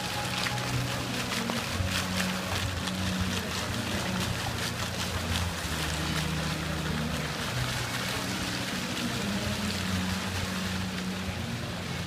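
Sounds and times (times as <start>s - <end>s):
fountain water splashing: 0.0s - 12.0s.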